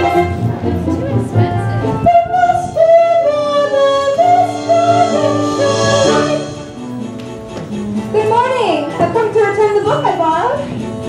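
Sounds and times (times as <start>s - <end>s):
high solo voice singing show tune: 0.0s - 6.8s
musical accompaniment: 0.0s - 11.0s.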